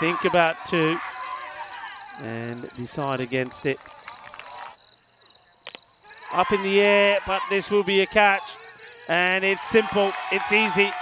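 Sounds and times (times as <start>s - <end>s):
insects trilling: 0.0s - 10.9s.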